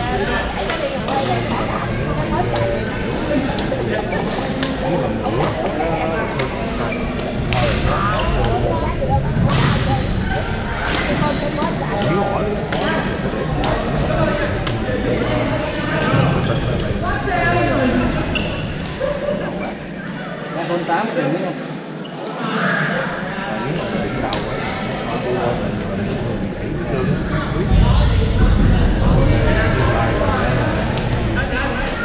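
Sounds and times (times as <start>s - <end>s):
players' voices echoing: 0.0s - 32.0s.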